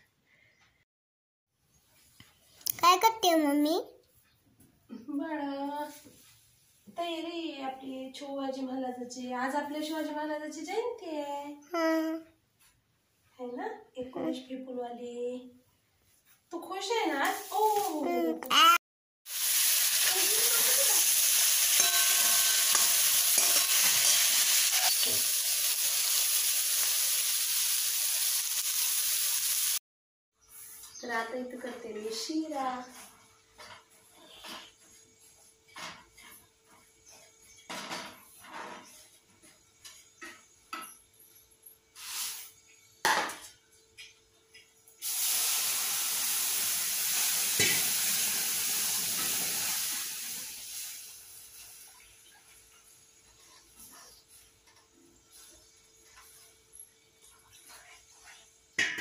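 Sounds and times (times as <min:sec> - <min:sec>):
vegetables sizzling in oil: 0:17.1 - 0:18.3, 0:19.3 - 0:29.8, 0:42.0 - 0:42.7, 0:45.0 - 0:52.2
ladle scraping and knocking pan: 0:21.7 - 0:25.3.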